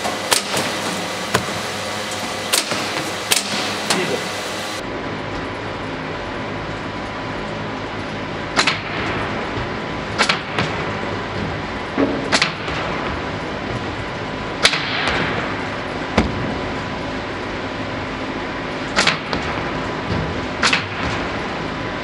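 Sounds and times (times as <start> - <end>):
machine steady mechanical hum: 0.0 - 22.0.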